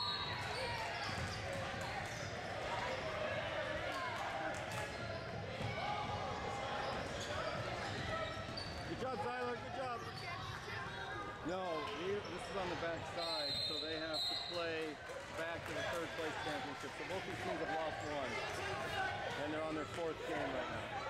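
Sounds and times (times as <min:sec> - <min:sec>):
background chatter of voices: 0:00.0 - 0:21.0.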